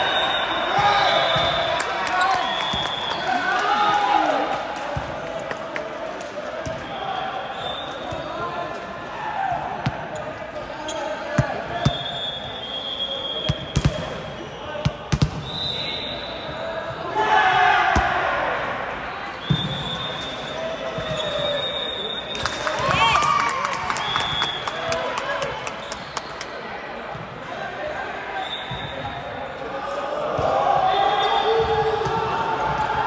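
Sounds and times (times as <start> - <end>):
volleyball thumps echoing in hall: 0.5 - 21.6, 28.6 - 33.0.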